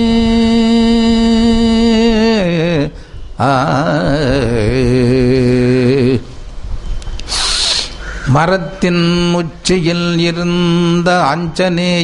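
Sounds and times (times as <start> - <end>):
low hum: 0.0 - 7.2
short hiss: 7.0 - 8.3.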